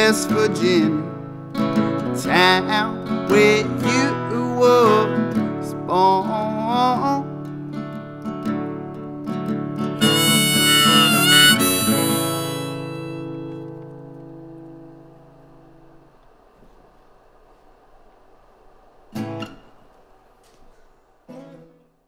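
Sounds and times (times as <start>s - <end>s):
strummed acoustic guitar: 0.0s - 15.9s, 21.3s - 22.0s
harmonica: 10.0s - 13.7s.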